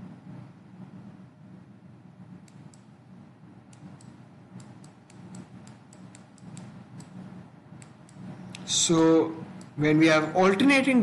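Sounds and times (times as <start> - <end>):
low steady hum: 0.0 - 11.0
stylus tapping on tablet: 3.8 - 7.2.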